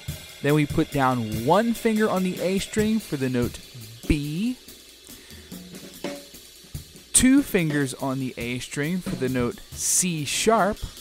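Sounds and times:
drum kit beat: 0.0s - 11.0s
hi-hat and cymbal: 0.0s - 11.0s
quiet background music: 0.1s - 11.0s.

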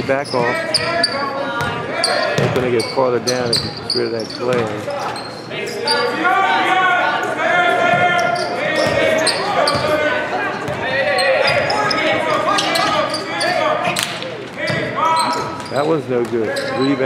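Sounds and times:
voices calling out: 0.0s - 17.0s.

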